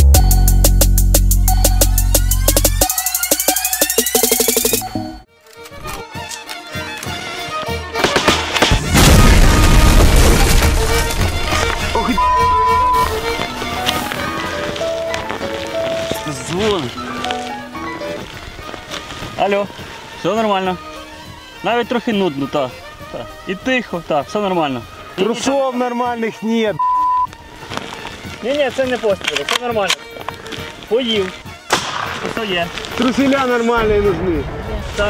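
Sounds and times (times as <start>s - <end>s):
electronic jingle with drum beat: 0.0s - 5.3s
dramatic music: 0.0s - 24.8s
steady beep: 2.8s - 5.2s, 12.2s - 13.1s, 26.8s - 27.3s
explosion blast: 8.7s - 12.0s.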